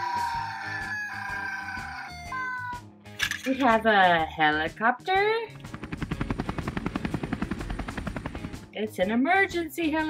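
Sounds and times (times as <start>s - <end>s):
helicopter rotor chopping: 5.5s - 9.2s.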